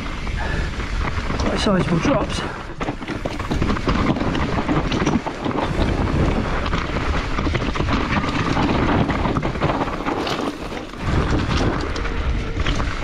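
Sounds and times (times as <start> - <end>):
bike knocking and rattling: 0.0 - 13.0
bike tyres rumbling on dirt: 0.0 - 13.0
wind buffeting microphone: 0.0 - 13.0.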